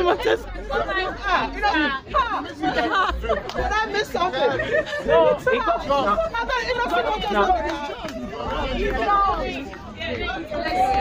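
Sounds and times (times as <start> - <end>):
lively group chatter: 0.0 - 11.0.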